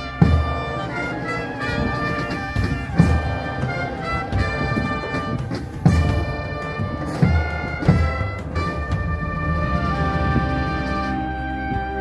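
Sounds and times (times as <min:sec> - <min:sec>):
brass band horns: 0:00.0 - 0:12.0.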